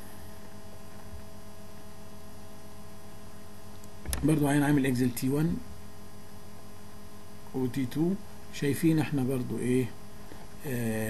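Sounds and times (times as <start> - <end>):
electrical hum: 0.0 - 11.0
faint hiss: 7.5 - 11.0.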